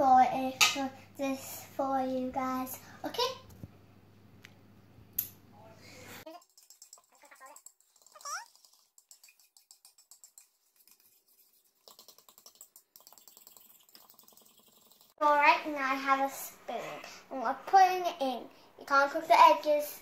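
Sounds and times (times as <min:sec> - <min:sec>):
fork whisking in a bowl: 0:06.3 - 0:15.2.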